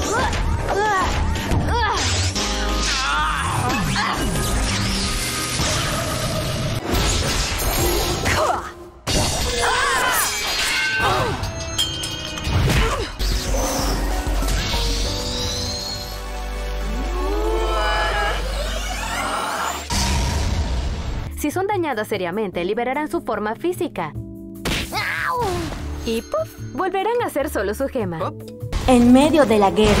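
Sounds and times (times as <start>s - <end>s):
electric blast with zaps: 4.0s - 8.2s
strained rising tone: 16.2s - 20.2s.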